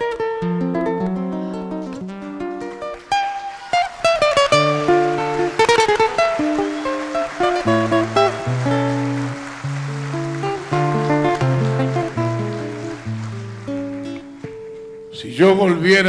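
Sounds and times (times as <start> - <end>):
fingerstyle acoustic guitar: 0.0 - 15.2.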